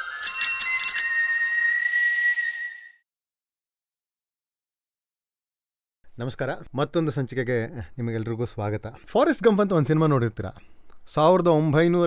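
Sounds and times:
bright ringing strikes: 0.0 - 2.1
held high tone: 0.0 - 3.0.

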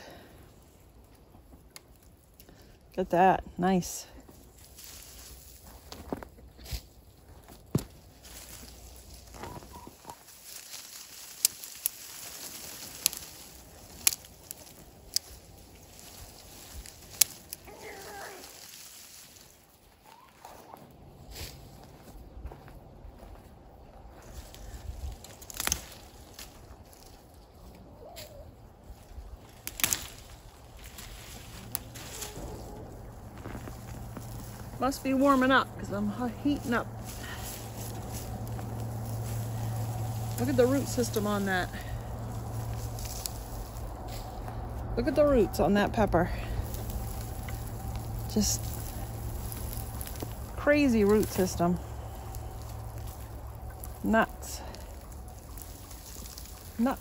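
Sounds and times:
plant stems rustling and clicking: 4.3 - 22.1, 24.2 - 57.0
poultry calls: 9.4 - 10.4.

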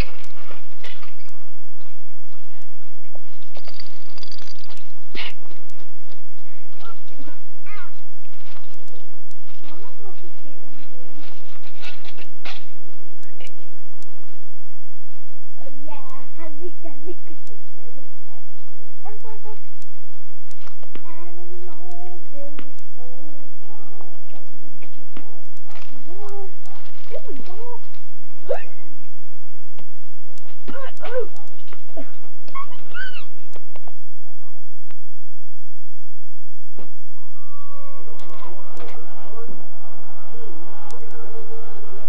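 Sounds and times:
low steady hum: 0.0 - 42.0
faint whisper: 37.1 - 42.0.

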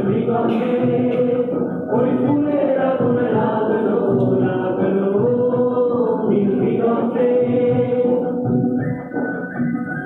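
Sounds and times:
muffled song with singing: 0.0 - 10.0.

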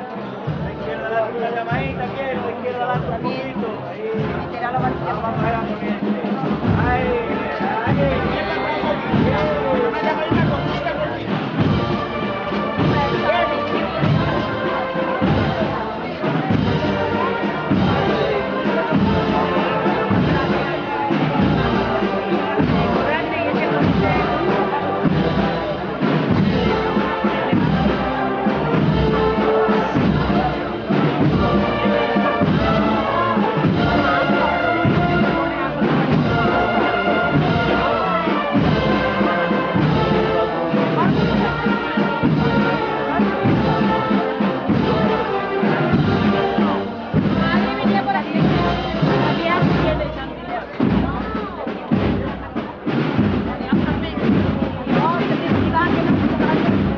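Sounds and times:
brass band playing a march: 0.0 - 56.9
steady drum beat: 0.0 - 56.9.

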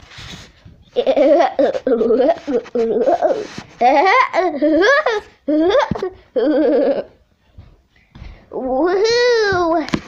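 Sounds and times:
child laughing: 1.0 - 7.2.

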